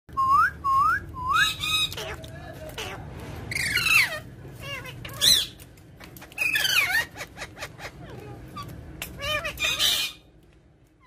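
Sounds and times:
parakeets calling: 1.2 - 10.3.

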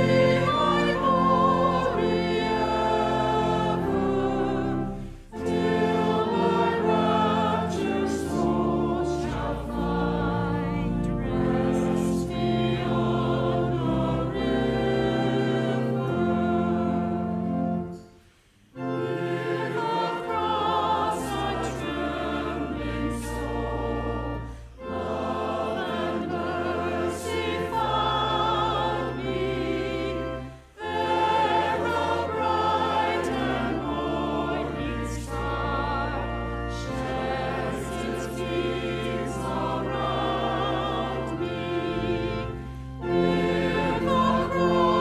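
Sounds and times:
choir and congregation singing hymn: 0.0 - 45.0
organ accompaniment: 0.0 - 45.0.

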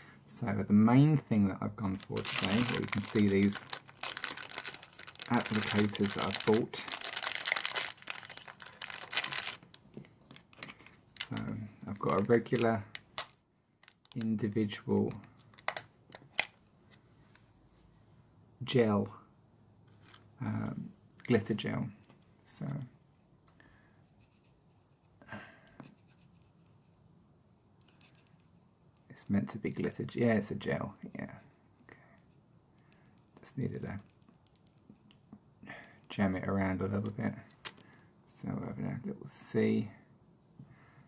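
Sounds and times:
plastic packet crinkling: 1.9 - 14.4, 15.4 - 16.5.

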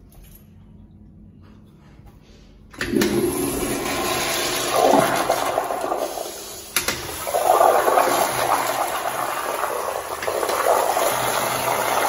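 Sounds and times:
toilet flushing: 2.7 - 12.0.

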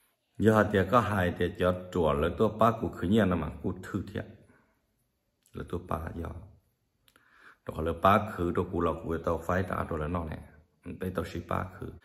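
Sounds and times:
man speaking: 0.4 - 4.4, 5.4 - 6.7, 7.6 - 12.0.

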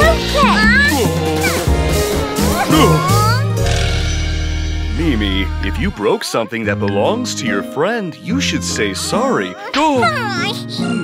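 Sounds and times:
background music chord: 0.0 - 10.1
cartoon character cry: 2.5 - 3.4.

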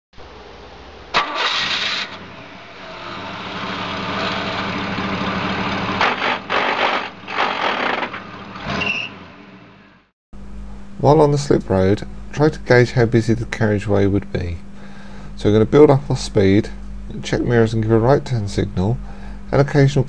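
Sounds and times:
car engine starting and running: 0.3 - 10.1.

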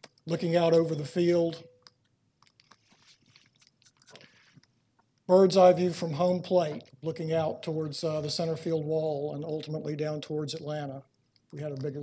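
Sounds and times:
faint small clicks and ticks: 1.8 - 5.3, 10.5 - 12.0.

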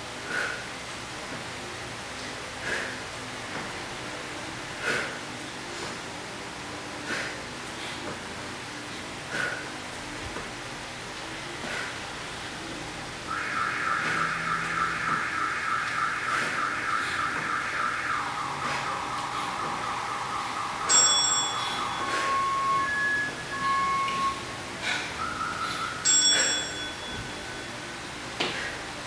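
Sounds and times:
pulsing electronic warble: 13.3 - 27.7
short electronic beeps: 13.3 - 27.8
bright bell chime: 20.6 - 24.4, 25.4 - 27.8.

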